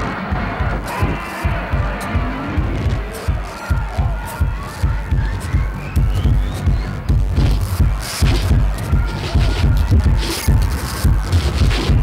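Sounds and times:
throbbing bass pulse: 0.0 - 12.0.

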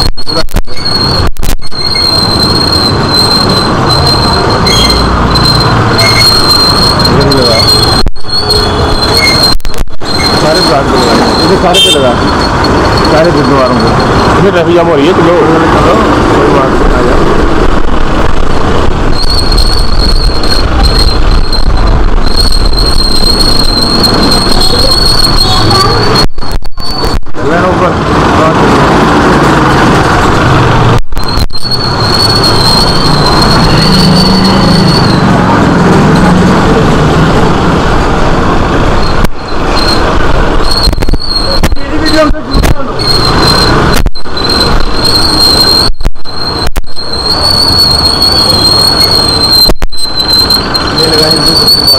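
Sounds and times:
thin high-pitched whine: 0.0 - 17.1, 19.1 - 28.5, 31.0 - 36.4, 38.9 - 51.9
traffic rumble: 0.0 - 51.9.

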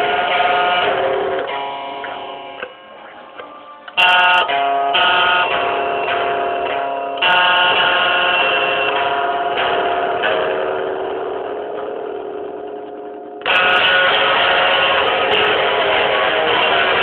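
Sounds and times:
guitar chords strummed: 0.0 - 17.0.

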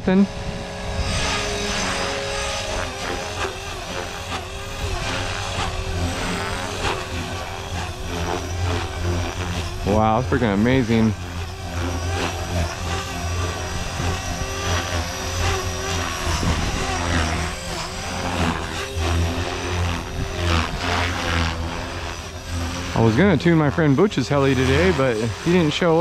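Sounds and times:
electric motor and gears whining: 0.0 - 26.0
helicopter rotor blades droning: 0.0 - 26.0.

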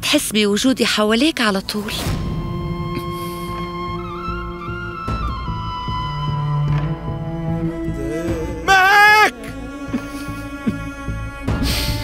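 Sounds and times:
sustained string notes: 1.4 - 12.0
wavering high vocal note: 7.3 - 11.5.

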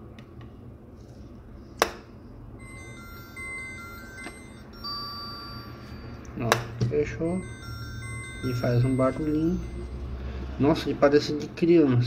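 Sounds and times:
phone beeping melody: 2.6 - 10.3.

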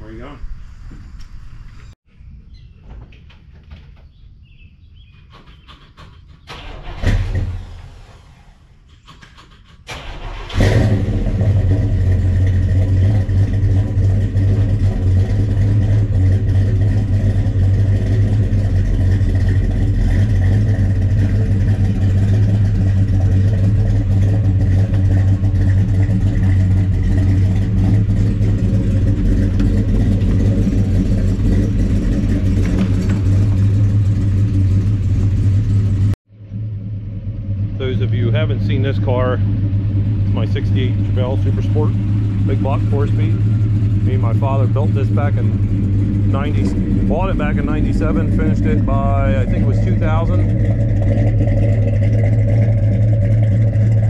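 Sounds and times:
car engine starting and idling: 5.6 - 54.0.

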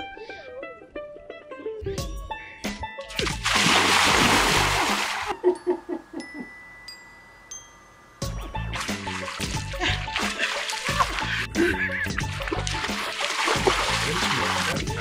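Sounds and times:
light background music: 0.0 - 15.0
water splashing: 3.1 - 5.4, 8.7 - 15.0.

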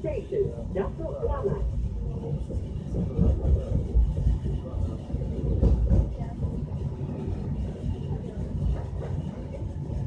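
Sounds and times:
train rumbling on track: 0.0 - 10.0.

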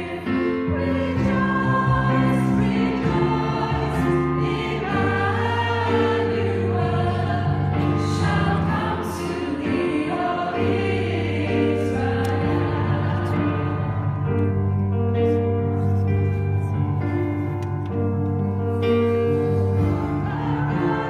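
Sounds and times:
choir singing a carol: 0.0 - 14.6, 19.3 - 21.0.

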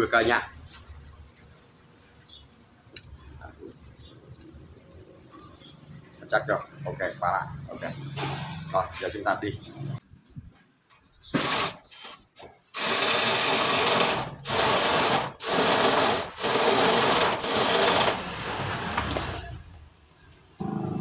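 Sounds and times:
drill-driven saw cutting wood: 11.4 - 11.8, 12.7 - 19.6.

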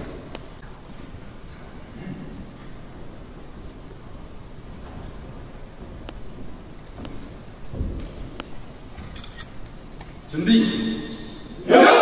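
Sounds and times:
large hall background noise: 0.0 - 12.0.

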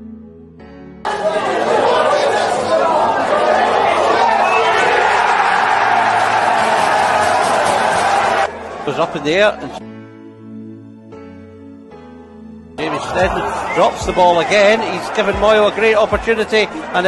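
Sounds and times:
crowd cheering: 1.0 - 9.8, 12.8 - 17.0
quiet background music: 4.9 - 17.0.

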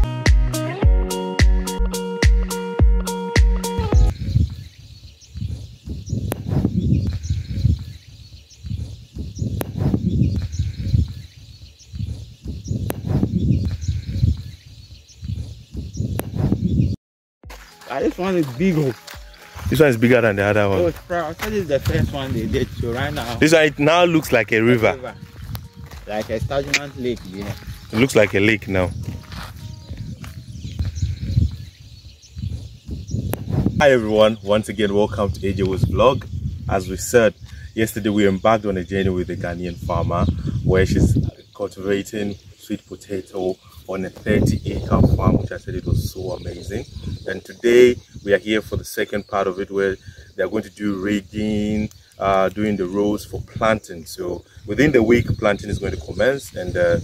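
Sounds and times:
wind buffeting microphone: 3.9 - 17.0, 19.6 - 57.0
faint bird chirps: 4.1 - 17.0, 22.1 - 57.0.

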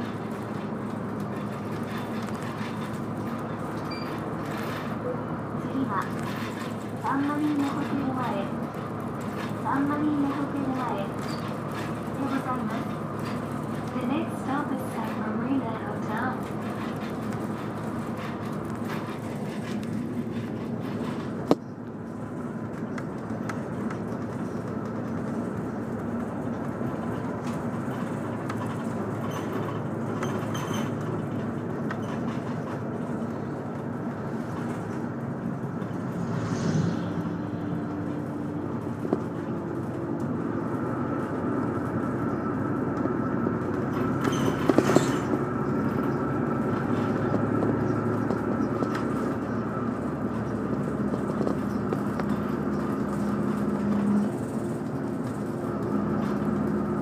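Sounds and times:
rattling clatter: 0.0 - 5.0, 43.0 - 56.8
bus diesel engine running: 0.0 - 57.0
road noise: 0.0 - 57.0.

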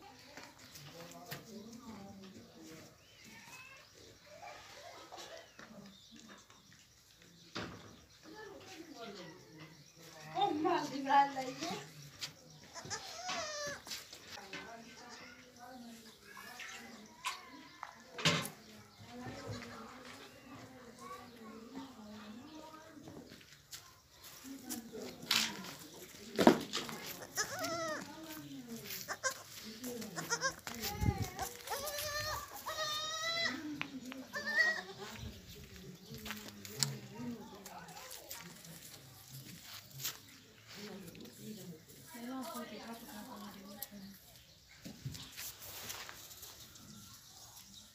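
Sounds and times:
baby goat bleating: 12.7 - 13.9, 27.2 - 28.1, 29.0 - 29.5, 30.2 - 33.6, 34.3 - 35.0.

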